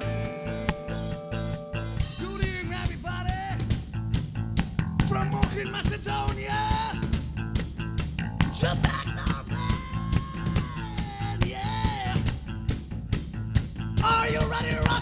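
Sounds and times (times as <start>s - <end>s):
lead guitar bending notes: 0.0s - 2.2s
live rock band playing: 0.0s - 15.0s.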